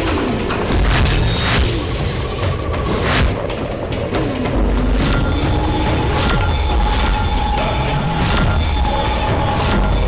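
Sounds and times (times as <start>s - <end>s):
high screeching metallic drone: 5.0s - 10.0s.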